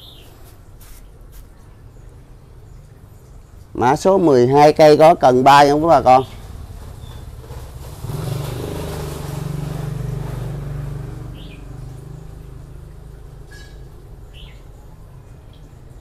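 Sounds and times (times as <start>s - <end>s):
bird chirps: 0.0s - 0.5s, 6.1s - 7.3s, 13.4s - 15.9s
passing vehicle engine hum: 5.8s - 16.0s.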